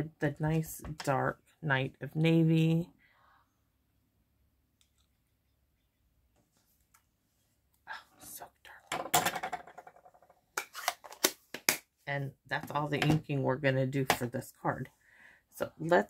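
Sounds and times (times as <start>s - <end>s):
soft whispering: 7.8s - 8.9s.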